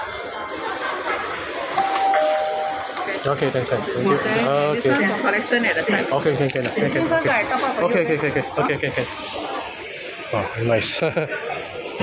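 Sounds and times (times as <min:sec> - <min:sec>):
restaurant room noise: 0:00.0 - 0:12.0
electronic two-note chime: 0:01.8 - 0:03.2.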